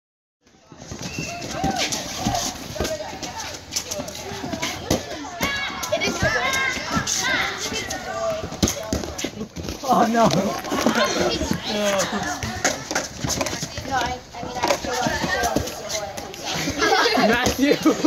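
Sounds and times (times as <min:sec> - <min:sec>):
children shouting: 0:01.2 - 0:03.1, 0:04.2 - 0:08.6.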